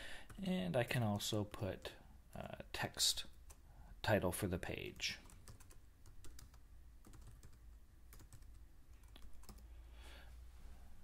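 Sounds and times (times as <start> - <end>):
typing on computer keyboard: 5.2 - 9.6.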